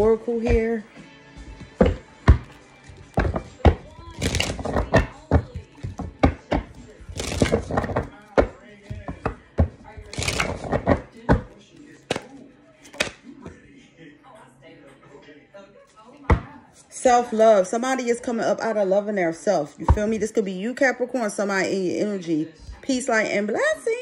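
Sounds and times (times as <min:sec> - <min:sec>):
cards being shuffled: 0:01.4 - 0:13.2.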